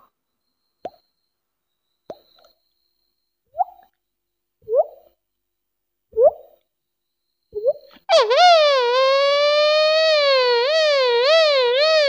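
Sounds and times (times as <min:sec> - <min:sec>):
beatboxer imitating a siren: 0:08.1 - 0:12.0.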